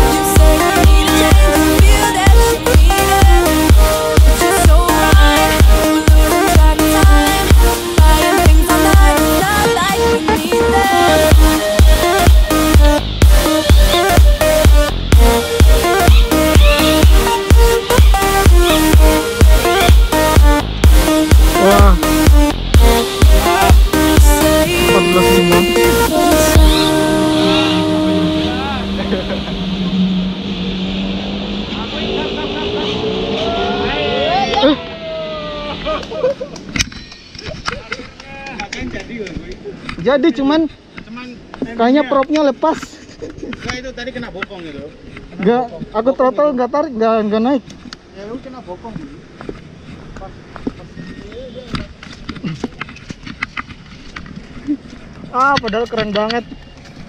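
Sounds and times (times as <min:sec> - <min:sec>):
drone motors humming: 0:00.0 - 0:35.9.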